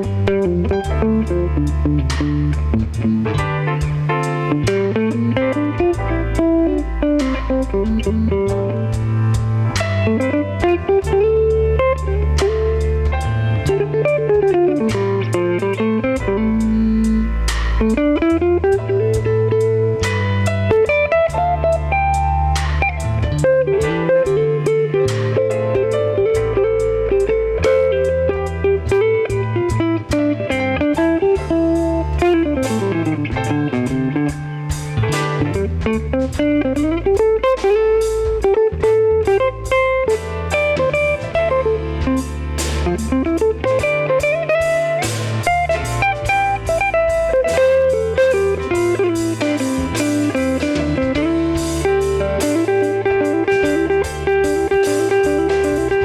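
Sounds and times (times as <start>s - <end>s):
bass line: 0.0s - 56.0s
drums: 0.0s - 56.0s
electric guitar solo: 0.0s - 56.0s.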